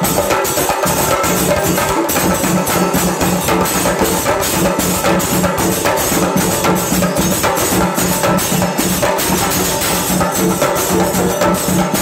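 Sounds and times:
drums beaten with sticks: 0:00.0 - 0:12.0
hand cymbals clashing: 0:00.0 - 0:12.0.

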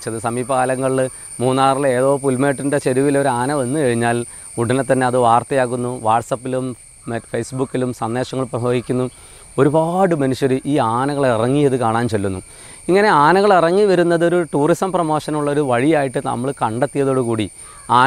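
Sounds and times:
high-pitched insect drone: 0:00.0 - 0:18.0
man talking: 0:00.0 - 0:18.0.

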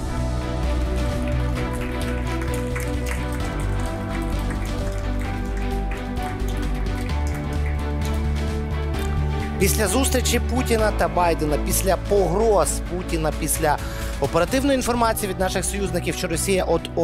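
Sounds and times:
theme music with heavy bass: 0:00.0 - 0:17.0
audience applauding: 0:00.4 - 0:15.0.

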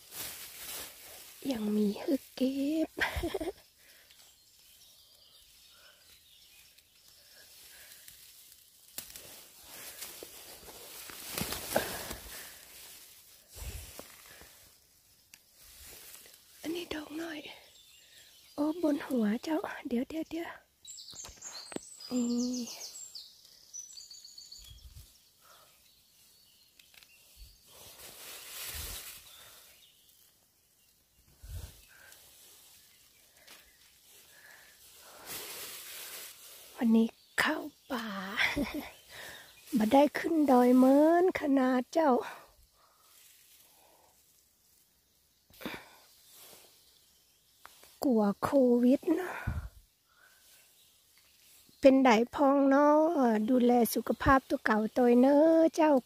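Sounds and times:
rustling of leaves and twigs: 0:00.0 - 0:56.0
soft woodland hiss: 0:00.0 - 0:56.0
bird singing: 0:01.4 - 0:07.8, 0:16.7 - 0:28.0, 0:29.2 - 0:35.0.

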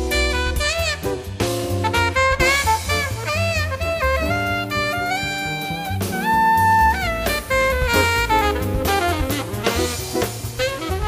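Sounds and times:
alto saxophone: 0:00.0 - 0:11.0
double bass: 0:00.0 - 0:11.0
drums: 0:00.0 - 0:11.0
guitar: 0:00.0 - 0:11.0
piano: 0:00.0 - 0:11.0.

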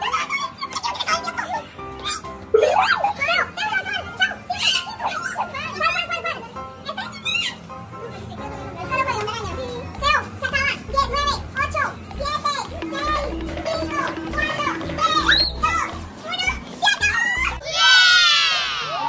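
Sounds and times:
child talking excitedly: 0:00.0 - 0:17.8
background music with bass: 0:09.4 - 0:17.6.

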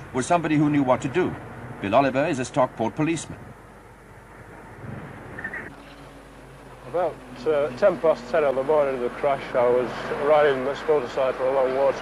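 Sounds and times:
outdoor street noise: 0:00.0 - 0:12.0.

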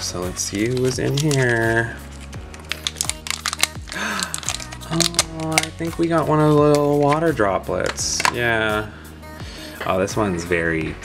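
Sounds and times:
faint background music: 0:00.0 - 0:11.0
foil seal crinkling: 0:00.4 - 0:07.3.

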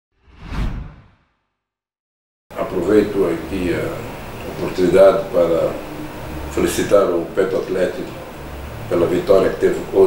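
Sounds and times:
whoosh sound effect: 0:00.2 - 0:01.3.

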